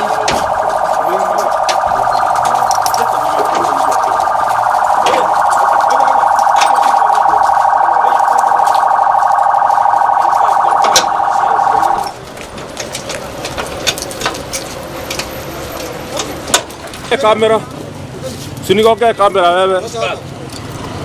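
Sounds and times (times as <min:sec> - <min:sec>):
warbling electronic siren: 0:00.0 - 0:12.2.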